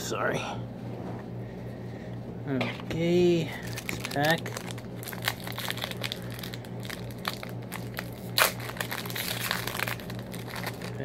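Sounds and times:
card pack wrapper crinkling: 0:03.5 - 0:11.0.

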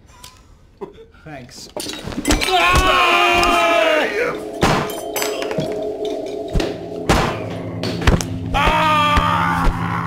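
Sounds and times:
music score: 0:02.8 - 0:09.6.

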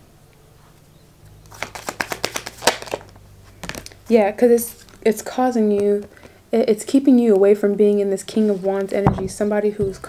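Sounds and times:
cards being shuffled: 0:01.5 - 0:05.1.

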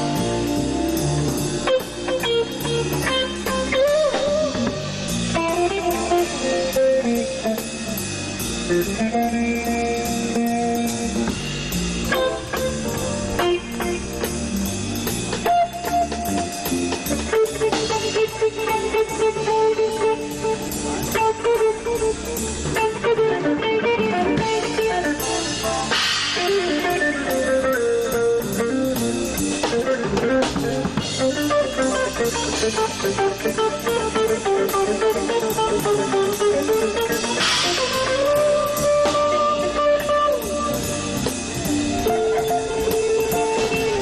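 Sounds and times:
bass: 0:00.0 - 0:44.0
drum kit: 0:00.0 - 0:44.0
electric guitar lead line: 0:00.0 - 0:44.0.

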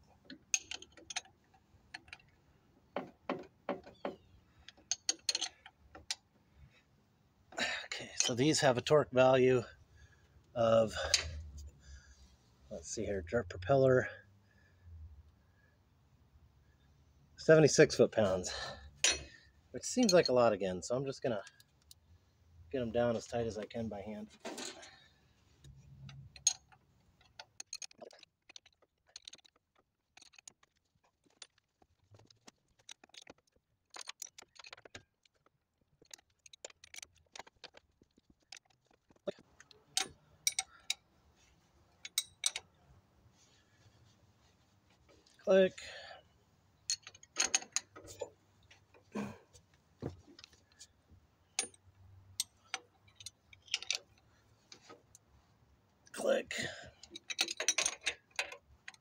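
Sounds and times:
wrench clicking against bolts: 0:39.9 - 0:41.0.

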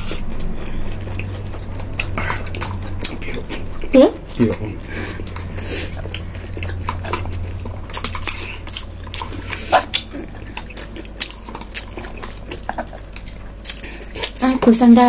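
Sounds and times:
chewing and wet mouth sounds: 0:00.0 - 0:15.0
low steady hum: 0:00.0 - 0:15.0.

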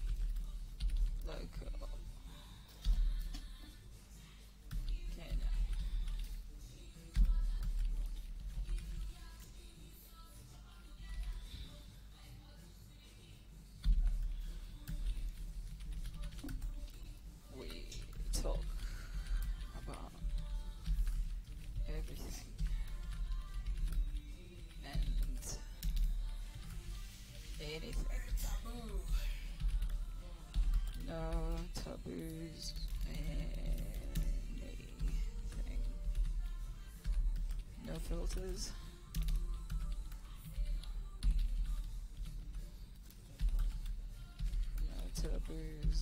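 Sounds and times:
computer keyboard typing: 0:00.0 - 0:01.9, 0:04.7 - 0:06.4, 0:07.1 - 0:09.4, 0:11.0 - 0:11.5, 0:13.8 - 0:26.8, 0:27.6 - 0:46.0.

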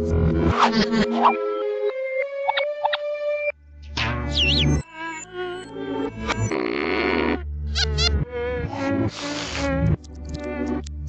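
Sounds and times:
warbling sliding tones: 0:00.5 - 0:01.4
cartoon music: 0:00.5 - 0:05.2, 0:07.7 - 0:09.6.

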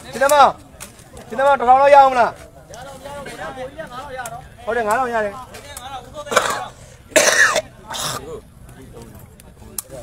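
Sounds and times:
person coughing: 0:06.3 - 0:08.2.

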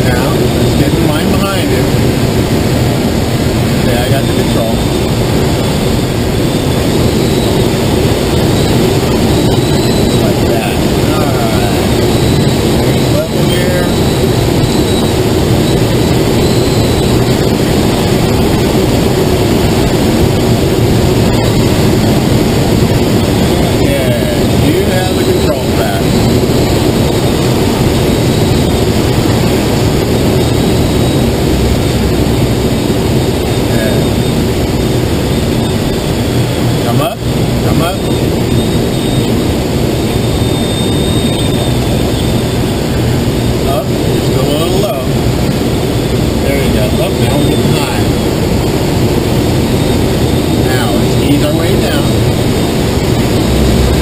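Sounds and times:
low steady drone: 0:00.0 - 0:54.0
rush of airflow: 0:00.0 - 0:54.0.

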